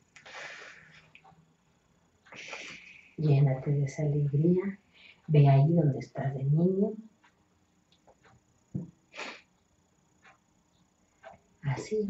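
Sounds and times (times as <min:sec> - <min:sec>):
person breathing softly: 0:00.2 - 0:01.2, 0:02.3 - 0:03.2, 0:04.8 - 0:05.3.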